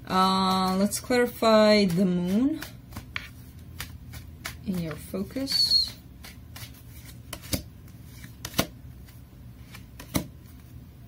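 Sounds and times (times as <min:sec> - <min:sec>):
cards being shuffled: 0:00.2 - 0:10.8.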